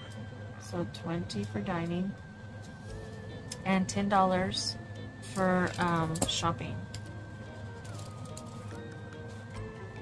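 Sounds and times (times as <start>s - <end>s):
soft background music: 0.0s - 10.0s
steady low hum: 0.0s - 10.0s.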